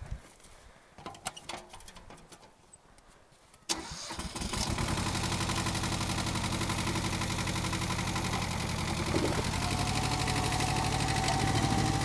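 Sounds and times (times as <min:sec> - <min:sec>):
diesel tractor engine starting: 0:03.7 - 0:12.0.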